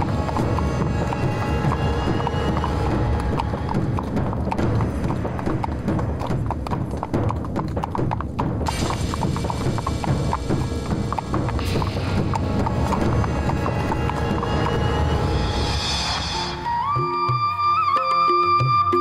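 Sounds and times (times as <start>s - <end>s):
horse hooves clip-clopping: 0.0s - 16.3s
background music: 0.0s - 19.0s.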